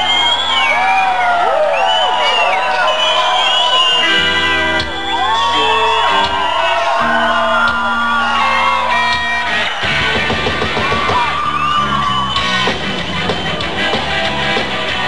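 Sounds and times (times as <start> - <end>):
drums: 0.0 - 15.0
voices yelling and whooping: 0.0 - 15.0
live rock band: 2.7 - 15.0.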